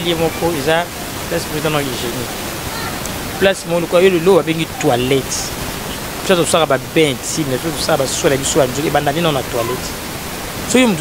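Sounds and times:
person speaking: 0.0 - 10.0, 10.6 - 11.0
steady hiss: 0.0 - 11.0.

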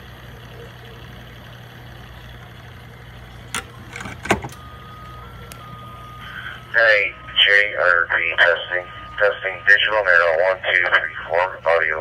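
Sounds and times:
radio hum and hiss: 0.0 - 12.0
faint steady beep tone: 4.5 - 7.8.

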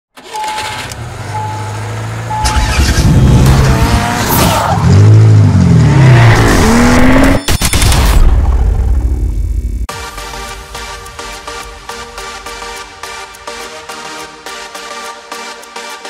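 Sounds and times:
car engine revving: 0.2 - 7.4
short beeps: 1.4 - 2.7.

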